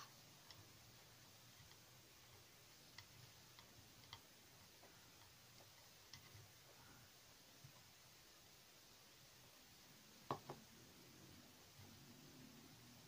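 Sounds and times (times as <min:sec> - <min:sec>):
faint irregular clicks: 0:00.0 - 0:08.0.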